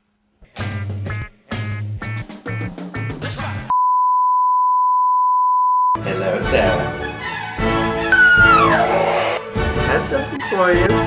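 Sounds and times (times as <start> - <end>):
music: 0.4 - 3.7, 6.0 - 11.0
censor bleep tone: 3.7 - 6.0, 8.1 - 8.8.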